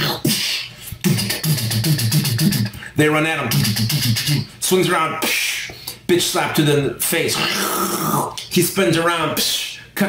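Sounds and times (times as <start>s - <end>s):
man making mouth music: 0.0s - 6.1s, 7.2s - 8.5s.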